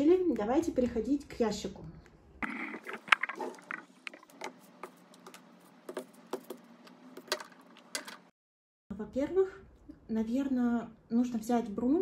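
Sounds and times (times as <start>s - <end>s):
plastic makeup items clattering: 7.2s - 8.3s.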